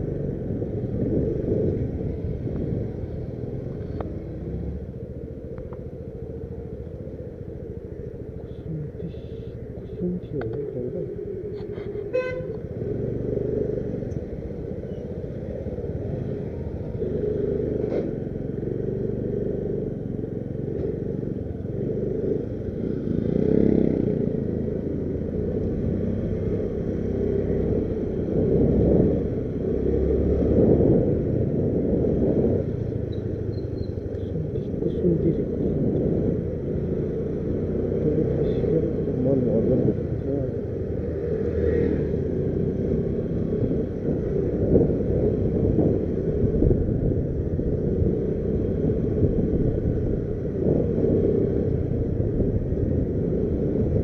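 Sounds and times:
motor scooter engine and road rumble: 0.0 - 54.0.

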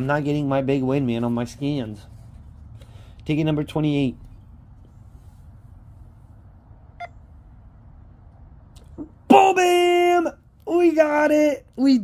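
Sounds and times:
low room rumble: 0.0 - 12.0
short high phone beep: 7.0 - 7.2.

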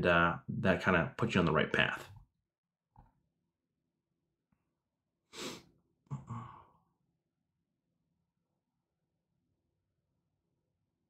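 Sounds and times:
man sighing: 6.1 - 6.8.

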